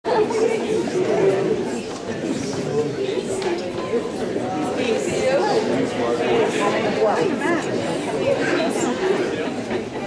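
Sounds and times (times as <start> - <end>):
crowd chatter indoors: 0.0 - 10.0.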